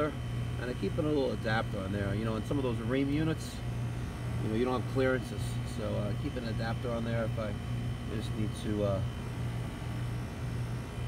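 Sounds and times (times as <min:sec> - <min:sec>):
air conditioner unit humming: 0:00.0 - 0:11.0.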